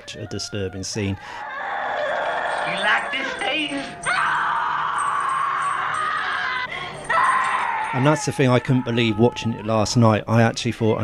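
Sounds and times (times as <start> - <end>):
woman screaming: 1.5 - 9.4.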